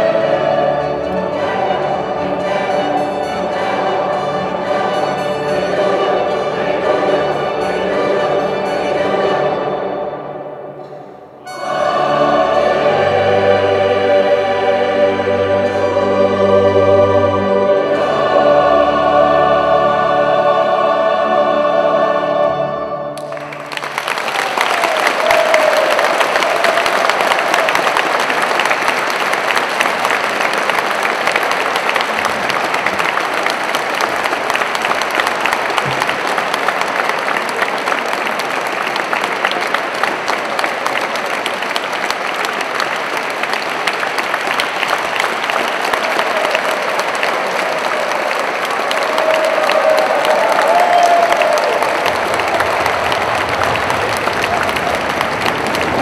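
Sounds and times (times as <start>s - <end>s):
choir and string orchestra chord: 0.0s - 28.2s
audience applause: 23.2s - 56.0s.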